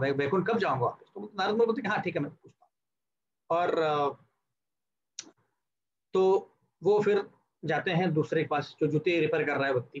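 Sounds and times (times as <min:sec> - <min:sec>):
man speaking: 0:00.0 - 0:02.6, 0:03.4 - 0:04.3, 0:06.1 - 0:10.0.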